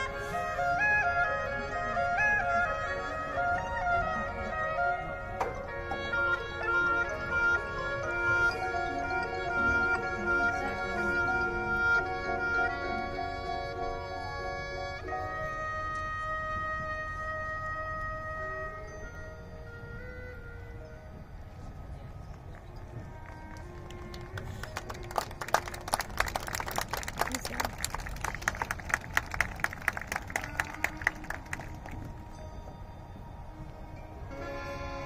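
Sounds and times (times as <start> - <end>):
marching band winds holding chords: 0.0 - 35.0.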